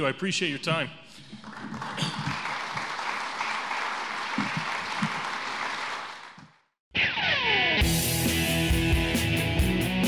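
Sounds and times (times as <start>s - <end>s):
audience applauding: 1.3s - 6.7s
man clearing his throat: 2.0s - 2.4s.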